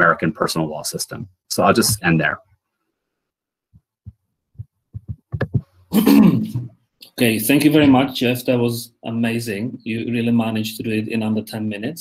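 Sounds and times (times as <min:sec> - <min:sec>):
faint low thumps and clicks: 0:01.1 - 0:02.4, 0:03.7 - 0:05.8
man clearing throat: 0:05.9 - 0:06.7.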